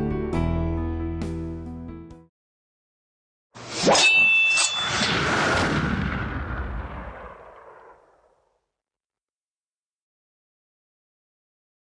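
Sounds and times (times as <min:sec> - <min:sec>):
heavy reverberant boom: 0:05.1 - 0:08.3.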